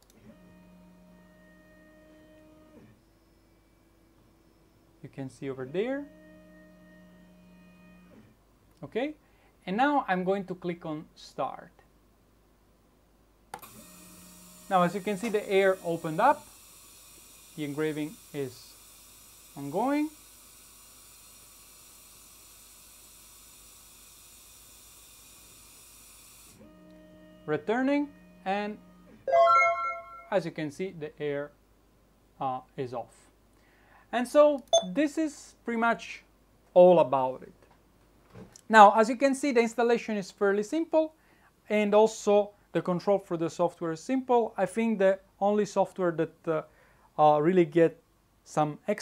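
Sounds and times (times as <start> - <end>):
faint steady hum: 0.0 - 9.7
faint high tones: 29.3 - 30.6.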